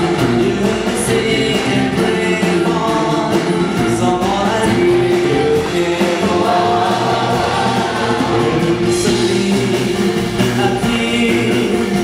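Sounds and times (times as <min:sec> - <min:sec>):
group backing harmonies: 0:00.0 - 0:12.0
live rock band playing: 0:00.0 - 0:12.0
man singing lead: 0:00.0 - 0:12.0.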